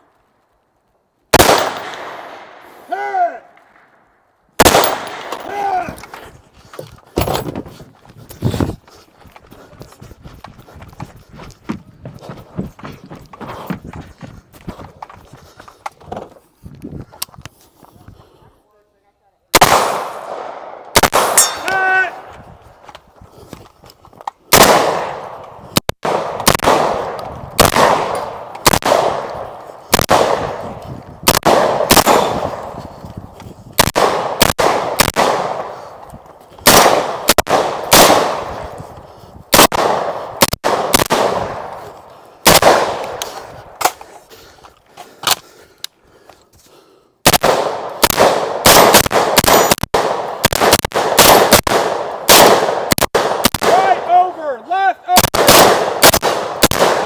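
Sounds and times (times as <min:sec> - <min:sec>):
rifle gunshots echoing: 0:01.3 - 0:02.8, 0:04.6 - 0:05.9, 0:19.5 - 0:22.3, 0:24.5 - 0:32.8, 0:33.8 - 0:36.0, 0:36.6 - 0:38.8, 0:39.5 - 0:44.0, 0:47.2 - 0:54.5, 0:55.1 - 0:57.0
steel target ringing: 0:21.3 - 0:21.8.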